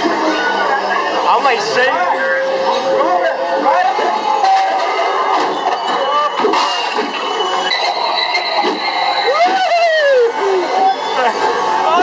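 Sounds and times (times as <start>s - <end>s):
mix of voices and effects: 0.0s - 12.0s
long rising and falling cry: 8.1s - 11.3s.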